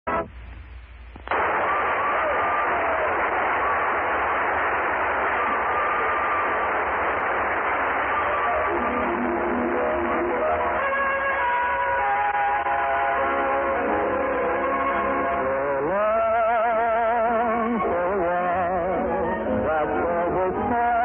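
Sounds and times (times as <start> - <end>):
dense rush of noise: 0.1 - 17.6
radio hiss: 0.1 - 20.8.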